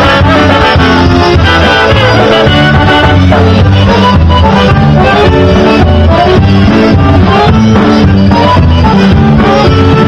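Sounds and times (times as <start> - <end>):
polka band music: 0.0 - 10.0.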